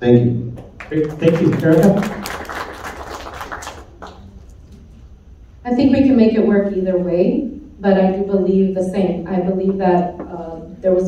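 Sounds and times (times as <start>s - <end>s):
low steady hall hum: 0.0s - 11.0s
audience clapping: 0.6s - 4.6s.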